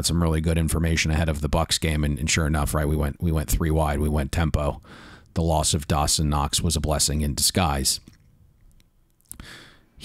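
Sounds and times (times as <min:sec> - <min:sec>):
person's intake of breath: 0:04.8 - 0:05.3, 0:09.3 - 0:10.0.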